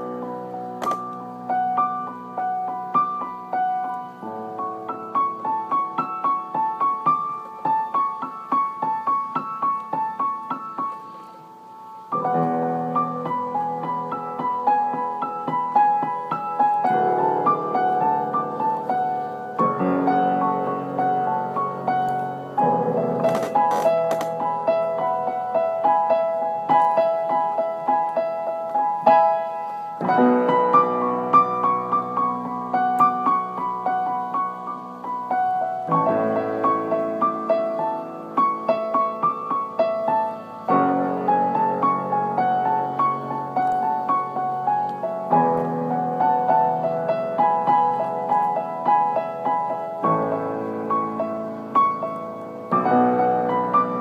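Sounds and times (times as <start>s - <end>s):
solo piano melody: 0.0s - 54.0s.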